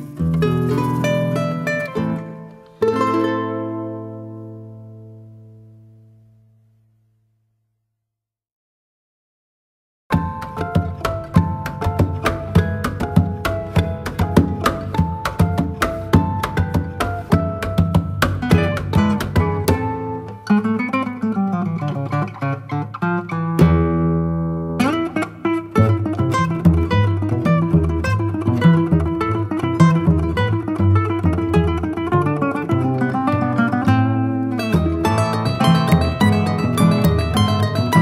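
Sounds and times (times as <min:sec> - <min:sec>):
plucked string music: 0:00.0 - 0:06.6, 0:10.1 - 0:38.0.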